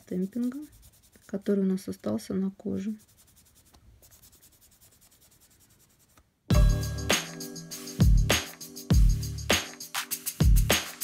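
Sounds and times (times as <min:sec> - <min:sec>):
wipe rubbing on nails: 0:00.0 - 0:06.4
loud background music: 0:06.5 - 0:11.0.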